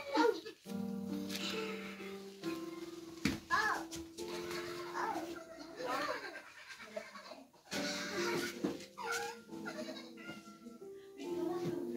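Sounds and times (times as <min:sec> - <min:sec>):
faint music with held notes: 0:00.0 - 0:11.9.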